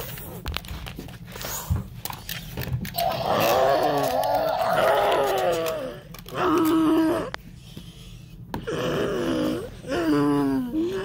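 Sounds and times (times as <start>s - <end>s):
toy handling clicks and rustles: 0.0s - 7.3s
long toy dinosaur roar: 3.0s - 7.4s, 8.6s - 11.0s.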